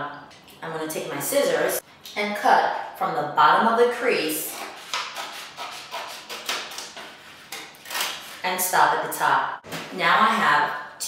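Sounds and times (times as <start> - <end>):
scissors cutting paper: 4.5 - 8.4.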